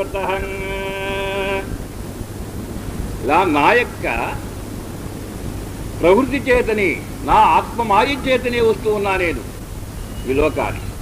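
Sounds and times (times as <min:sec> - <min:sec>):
man speaking: 0:00.0 - 0:01.8, 0:03.2 - 0:04.5, 0:06.0 - 0:09.5, 0:10.3 - 0:10.9
steady background hiss: 0:00.0 - 0:11.0.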